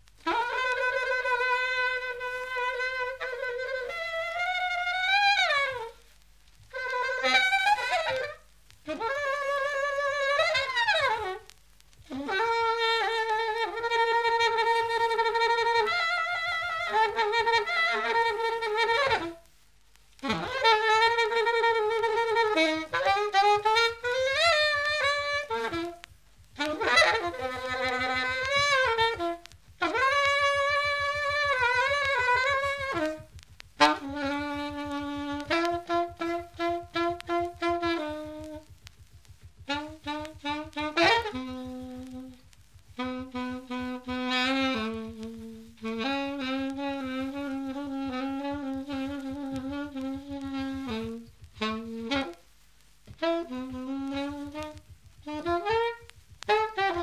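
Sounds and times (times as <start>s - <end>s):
alto saxophone free jazz: 0.0s - 57.0s.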